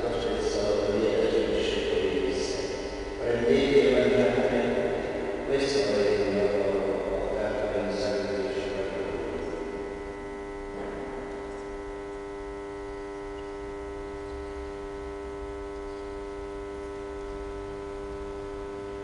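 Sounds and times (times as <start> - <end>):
steady electrical hum: 0.0 - 19.0.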